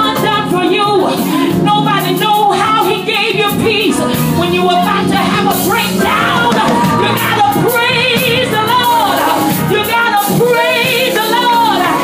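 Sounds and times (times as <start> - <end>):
band accompaniment: 0.0 - 12.0
woman singing gospel: 0.0 - 12.0.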